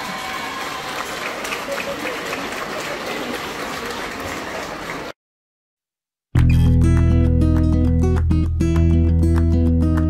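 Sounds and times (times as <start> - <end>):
audience applauding: 0.0 - 5.2
crowd chatter: 1.2 - 5.2.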